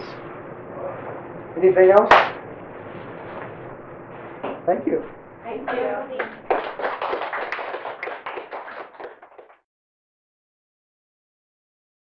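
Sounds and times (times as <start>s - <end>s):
audience applauding: 6.1s - 9.6s.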